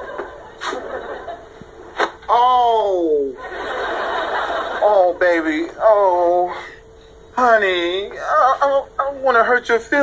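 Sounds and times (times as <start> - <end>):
studio audience laughter: 0.0 - 2.0, 3.4 - 5.2.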